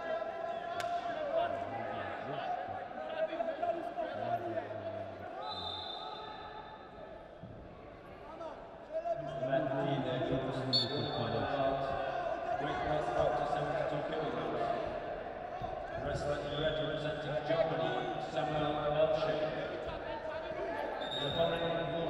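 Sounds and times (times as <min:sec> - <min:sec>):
referee's whistle blast: 0:05.4 - 0:06.5, 0:10.7 - 0:11.4, 0:21.0 - 0:21.6.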